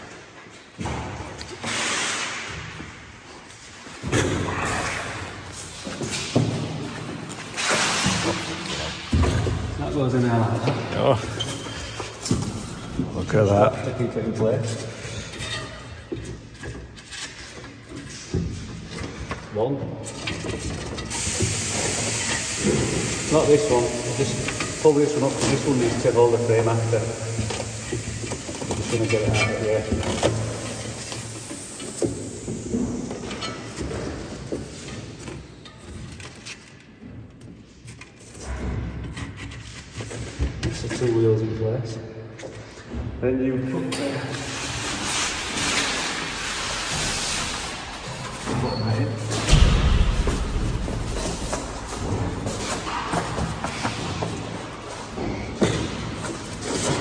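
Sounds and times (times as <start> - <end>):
steady hiss: 20.9 - 35.2.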